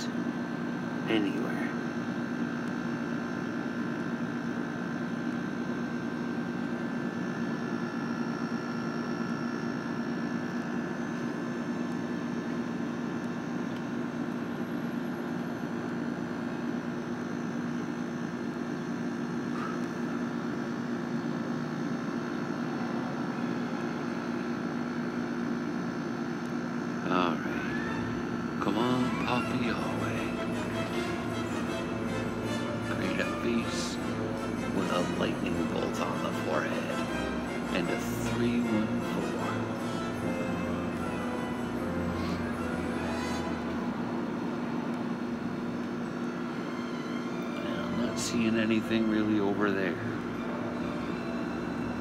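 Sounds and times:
steady mechanical hum: 0.0s - 52.0s.

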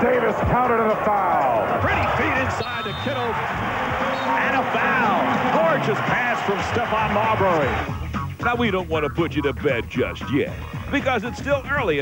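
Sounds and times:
arena crowd noise: 0.0s - 8.8s
man calling excitedly: 0.0s - 10.4s.

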